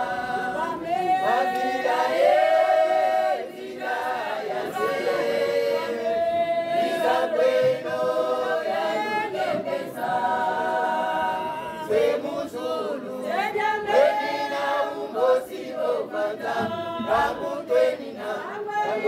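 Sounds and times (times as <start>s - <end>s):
women's choir singing unaccompanied: 0.0s - 19.0s.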